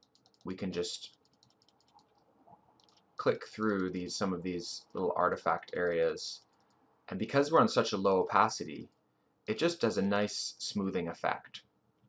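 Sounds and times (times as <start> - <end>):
computer mouse clicks: 0.0 - 2.2, 2.8 - 4.0, 4.9 - 6.8.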